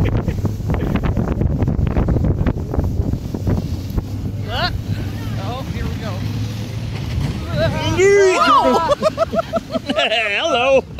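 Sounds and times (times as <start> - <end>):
wind buffeting microphone: 0.0 - 9.8
truck engine humming: 0.0 - 10.9
wavering yell: 7.6 - 9.1.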